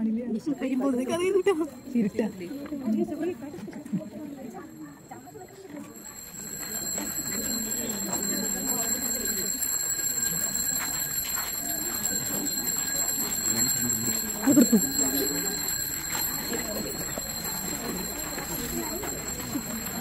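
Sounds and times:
crowd chattering: 0.0 - 20.0.

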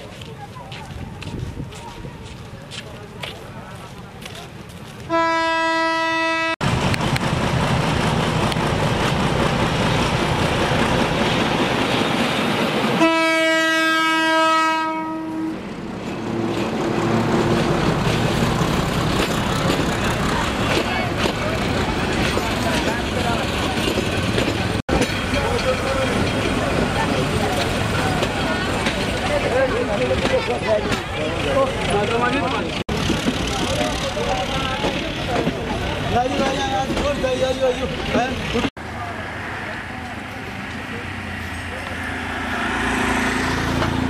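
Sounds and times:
passing train rumble: 0.0 - 44.0
train horn: 5.1 - 6.6, 13.0 - 15.6.

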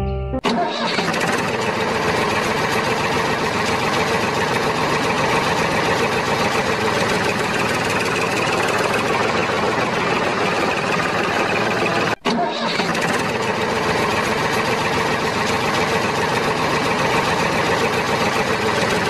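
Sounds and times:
background music: 0.0 - 0.5
tractor engine running: 0.5 - 19.0.

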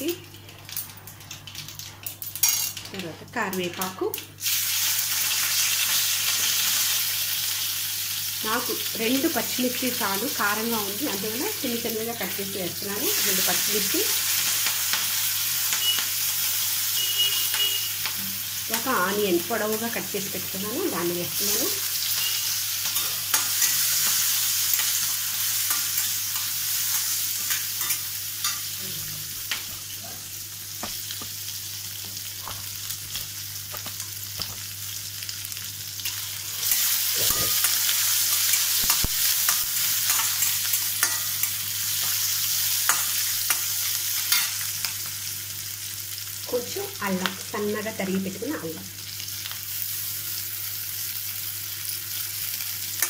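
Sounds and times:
vegetables sizzling in hot oil: 0.0 - 53.0.

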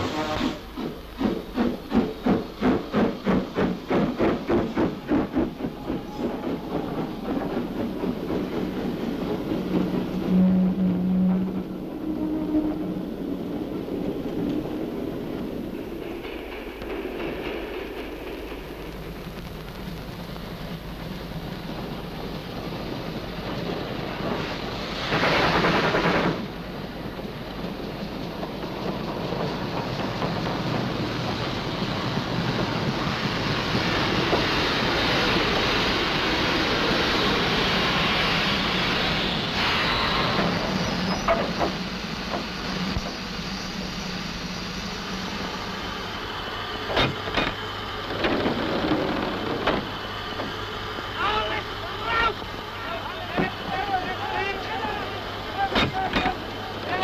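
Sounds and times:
loud steam hissing: 0.0 - 57.0
steam locomotive chuffing: 0.0 - 57.0
steady rumble and hiss: 41.5 - 57.0.

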